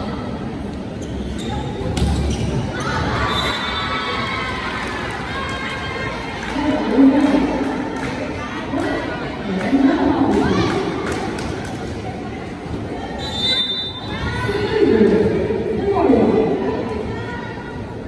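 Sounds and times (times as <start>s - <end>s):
crowd noise: 0.0s - 18.0s.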